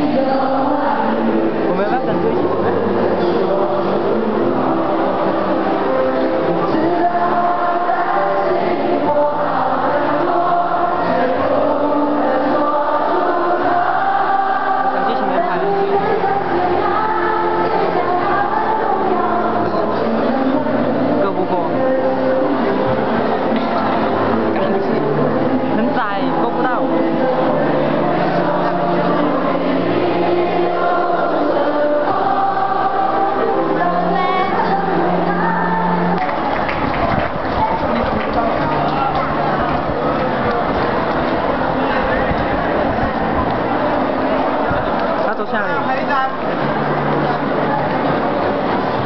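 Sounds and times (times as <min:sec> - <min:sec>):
group of voices singing: 0:00.0 - 0:49.0.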